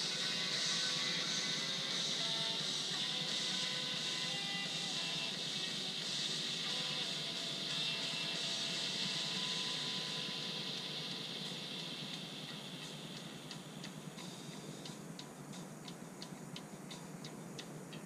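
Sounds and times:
electric model plane motor whine: 0:00.0 - 0:11.9
steady high-pitched buzz: 0:00.0 - 0:18.0.

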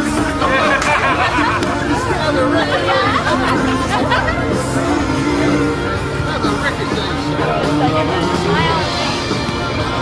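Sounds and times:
music playing: 0:00.0 - 0:10.0
people chatting: 0:00.2 - 0:10.0.

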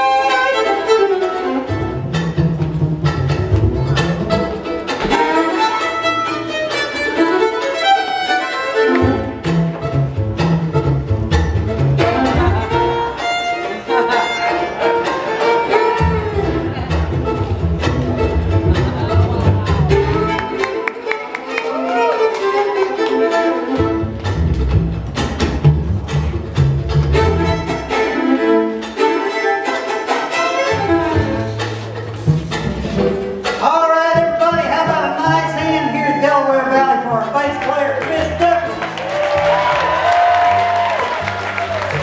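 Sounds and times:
banjo: 0:00.0 - 0:42.0
fiddle playing lead: 0:00.0 - 0:42.0
plucked upright bass: 0:00.0 - 0:42.0.

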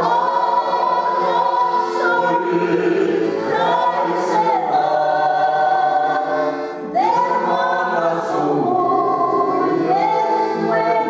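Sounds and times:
group of voices singing: 0:00.0 - 0:11.0
piano accordion: 0:00.0 - 0:11.0.

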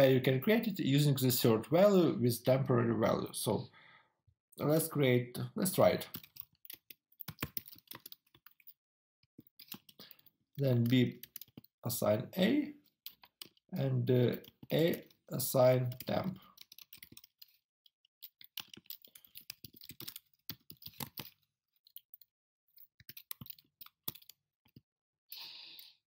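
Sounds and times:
typing on computer keyboard: 0:05.8 - 0:11.8, 0:13.0 - 0:13.6, 0:14.2 - 0:17.6, 0:18.2 - 0:24.8.

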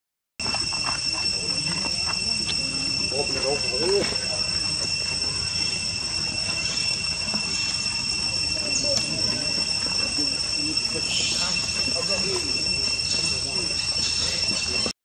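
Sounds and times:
high-pitched insect drone: 0:00.4 - 0:14.9.

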